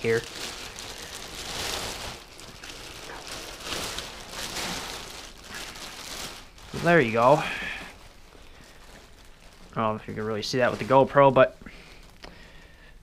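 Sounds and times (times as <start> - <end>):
plastic bag rustling and crinkling: 0.0 - 13.0.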